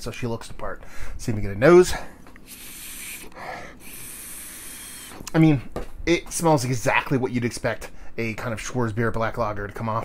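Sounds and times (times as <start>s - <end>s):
man sniffing: 2.4s - 5.3s.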